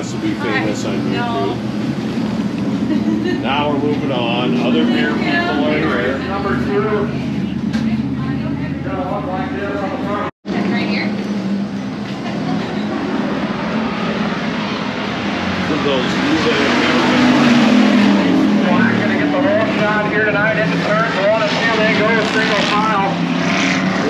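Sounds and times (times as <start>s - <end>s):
voices: 0.0s - 1.9s, 2.6s - 14.7s, 15.4s - 24.0s
race car engines: 0.0s - 24.0s.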